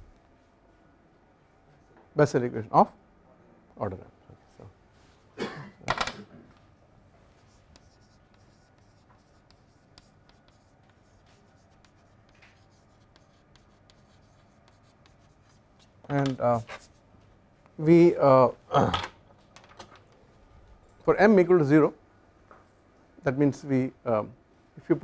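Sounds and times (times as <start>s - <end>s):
chalk tapping and scratching: 6.7s - 17.0s.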